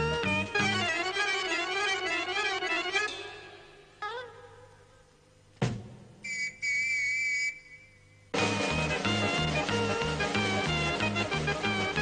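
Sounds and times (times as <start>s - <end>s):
whistle blasts: 6.2s - 8.4s.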